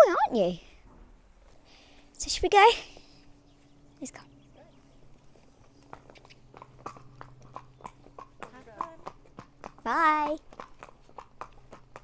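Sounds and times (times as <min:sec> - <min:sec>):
hooves clopping on concrete: 0:04.7 - 0:12.0.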